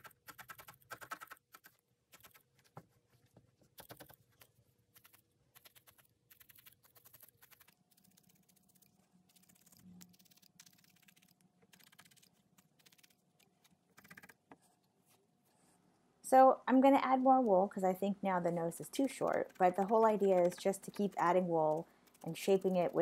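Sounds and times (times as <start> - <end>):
felting needle ticking: 0.0 - 2.7, 3.7 - 14.6, 17.2 - 23.0.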